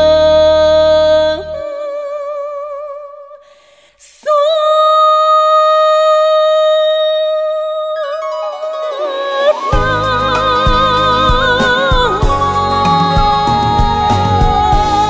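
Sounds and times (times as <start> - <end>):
folk song held note with vibrato: 7.3 - 15.0
folk music accompaniment: 8.3 - 15.0.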